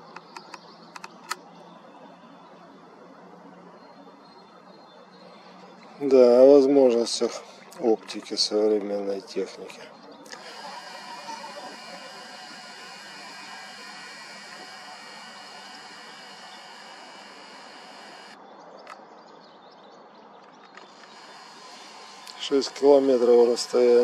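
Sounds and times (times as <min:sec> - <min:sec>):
faint outdoor background: 0:00.0 - 0:24.0
camera zoom motor running: 0:10.3 - 0:18.4, 0:20.8 - 0:24.0.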